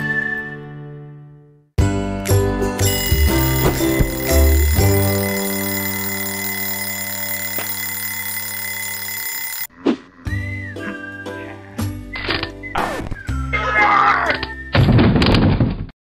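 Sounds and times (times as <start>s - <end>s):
background music: 1.8s - 6.4s
alarm clock ringing: 2.8s - 9.7s.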